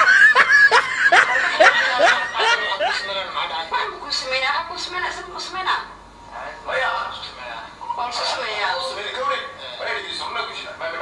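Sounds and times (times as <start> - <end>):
man laughing: 0.0 - 3.2.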